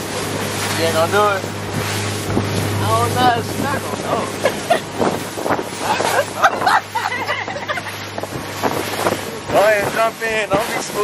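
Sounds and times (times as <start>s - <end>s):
low hum: 0.0s - 9.4s
wind buffeting microphone: 0.0s - 11.0s
people laughing: 4.3s - 8.3s.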